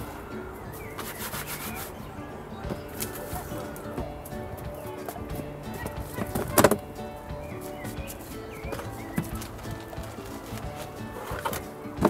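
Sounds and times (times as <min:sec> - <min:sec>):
plant stems rustling: 0:00.8 - 0:12.0.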